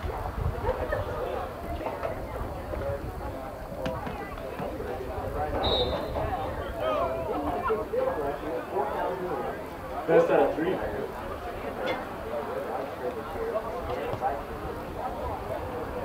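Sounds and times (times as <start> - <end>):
wind rumble on microphone: 0.0 - 7.7
indistinct talk: 0.0 - 16.0.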